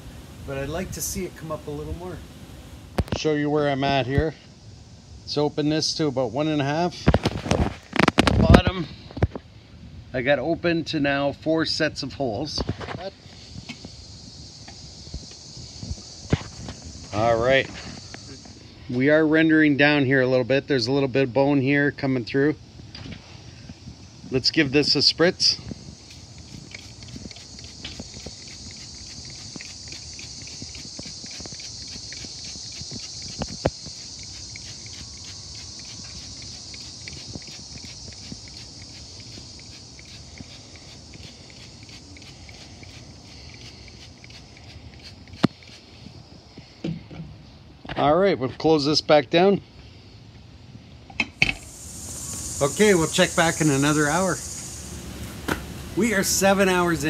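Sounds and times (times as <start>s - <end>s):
faint steady hiss: 0.0s - 57.0s
insects chirring: 0.0s - 57.0s
spray bottle spritzing: 26.0s - 46.0s, 51.5s - 57.0s.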